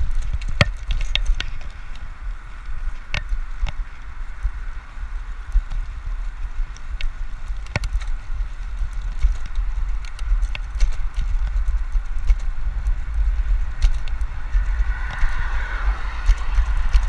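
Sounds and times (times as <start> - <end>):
clicks and knocks from bike: 0.0 - 17.0
wind buffeting microphone: 0.0 - 17.0.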